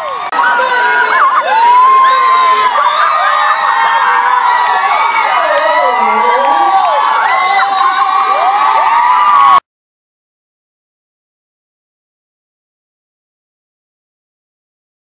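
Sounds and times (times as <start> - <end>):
audience screaming and cheering: 0.0 - 9.6.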